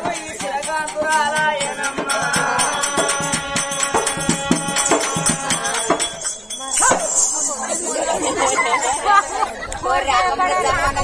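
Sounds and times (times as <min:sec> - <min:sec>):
people talking: 0:05.4 - 0:11.0.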